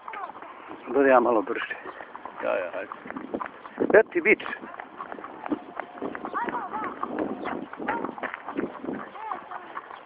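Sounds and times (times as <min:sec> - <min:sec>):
horse hooves clip-clopping on concrete: 0:00.0 - 0:10.0
voices talking: 0:00.0 - 0:10.0.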